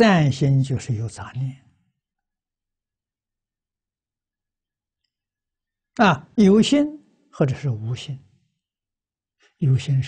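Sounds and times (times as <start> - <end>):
man speaking: 0.0 - 1.7, 6.0 - 8.3, 9.6 - 10.0.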